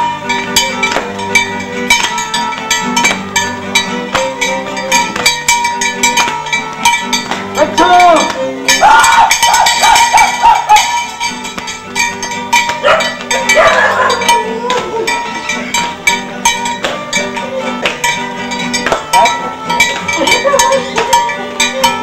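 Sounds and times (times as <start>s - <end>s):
folk dance music: 0.0s - 22.0s
sharp rhythmic clicks: 0.4s - 22.0s.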